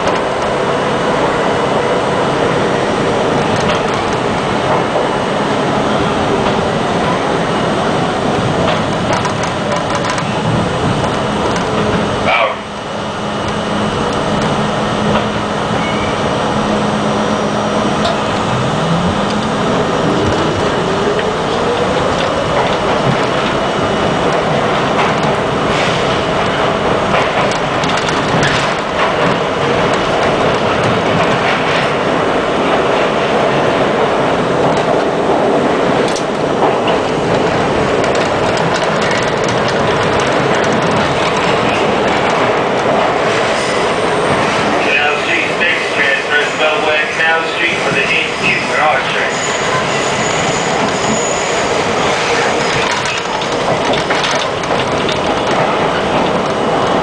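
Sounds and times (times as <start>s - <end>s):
subway train motor whine: 0.0s - 57.0s
train running roar: 0.0s - 57.0s
wheels clacking over rail joints: 3.3s - 5.2s, 8.3s - 12.2s, 18.0s - 43.6s, 50.8s - 57.0s.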